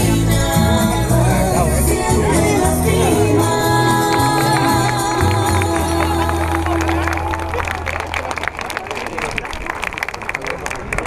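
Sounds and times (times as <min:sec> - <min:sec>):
folk dance music: 0:00.0 - 0:09.1
crowd noise: 0:00.0 - 0:11.0
audience clapping: 0:03.8 - 0:11.0.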